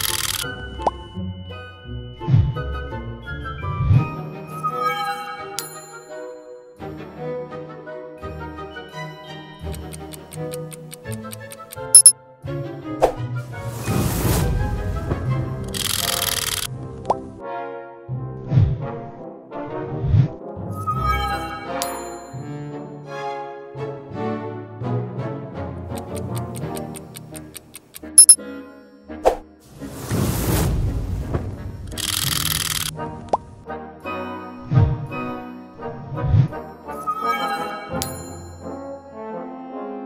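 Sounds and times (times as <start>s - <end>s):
background music: 0.0s - 40.0s
rapid clock ticking: 9.7s - 12.1s, 26.0s - 28.4s
countdown timer ticking rapidly: 26.0s - 28.4s.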